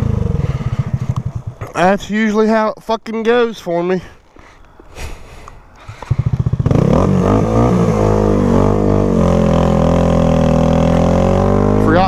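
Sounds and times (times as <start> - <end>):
motorcycle engine revving: 0.0 - 1.8, 5.8 - 12.0.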